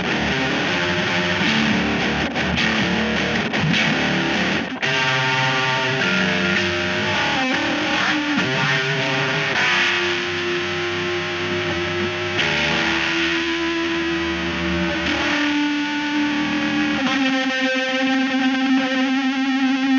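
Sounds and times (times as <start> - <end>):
distorted electric guitar notes: 0.0 - 19.9.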